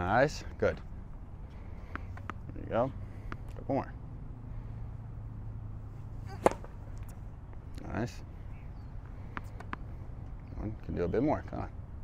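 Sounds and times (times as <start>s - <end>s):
steady low hum: 0.0s - 11.0s
tennis racket hitting ball: 6.3s - 6.8s.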